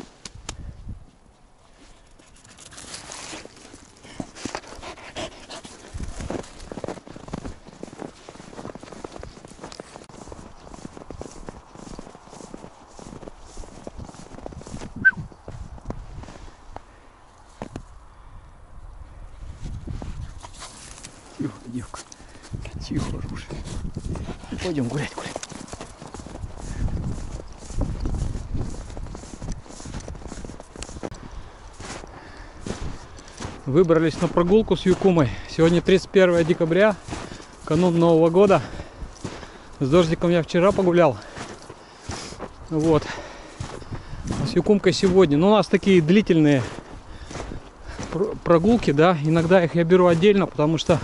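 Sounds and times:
footsteps crunching in snow: 1.0 - 16.8, 17.4 - 18.0, 19.4 - 51.0
dog panting: 4.4 - 6.0.

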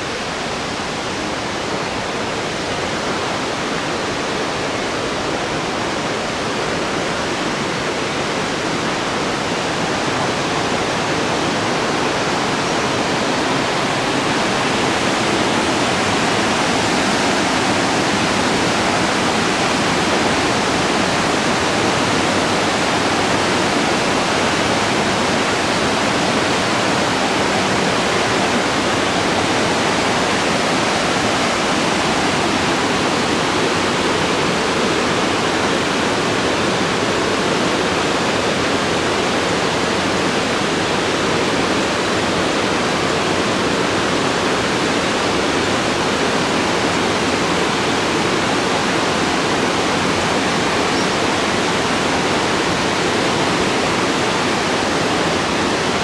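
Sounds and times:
waterfall tumbling over rocks: 0.0 - 56.0.

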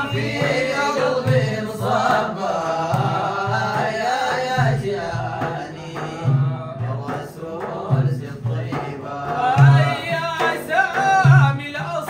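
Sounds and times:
frame drums beating: 0.0 - 12.0
men chanting in unison: 0.0 - 12.0.

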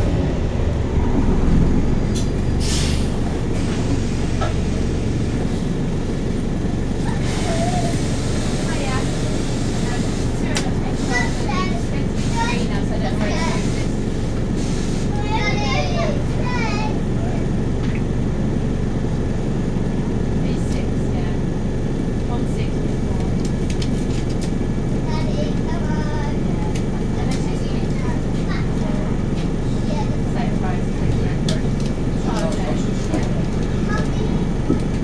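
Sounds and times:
bus diesel engine idling: 0.0 - 35.0
passengers chattering faintly: 25.0 - 35.0.

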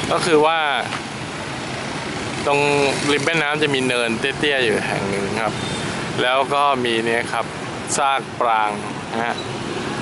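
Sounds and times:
man talking: 0.0 - 1.0, 2.4 - 5.6, 6.2 - 9.4
motorbike traffic: 0.0 - 10.0.

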